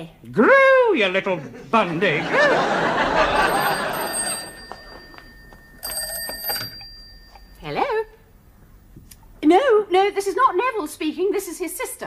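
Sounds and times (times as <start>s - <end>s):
audience laughter: 1.3s - 5.0s
telephone bell ringing: 3.0s - 8.0s.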